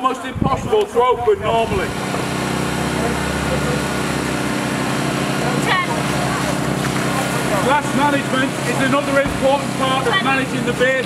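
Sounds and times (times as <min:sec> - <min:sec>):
engine running steadily: 0:01.4 - 0:11.0.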